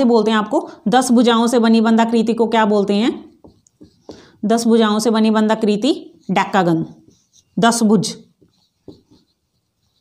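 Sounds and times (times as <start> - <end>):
marker writing on whiteboard: 1.8 - 10.0.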